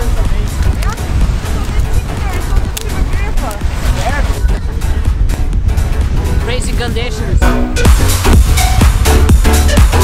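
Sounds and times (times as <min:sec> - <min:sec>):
voices: 0:00.0 - 0:05.3
wind buffeting microphone: 0:00.0 - 0:09.2.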